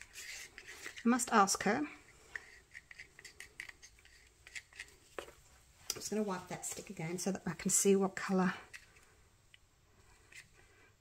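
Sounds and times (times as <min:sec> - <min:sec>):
stick stirring resin in cup: 0:00.0 - 0:10.8.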